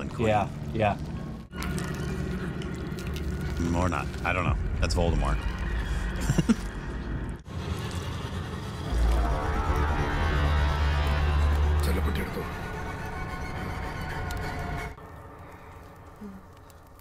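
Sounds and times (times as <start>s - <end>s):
dark music: 0.0s - 17.0s
deep low rumble: 0.0s - 17.0s.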